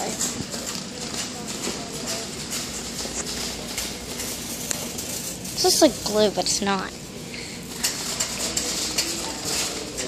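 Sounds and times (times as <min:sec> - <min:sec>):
store background noise: 0:00.0 - 0:10.0.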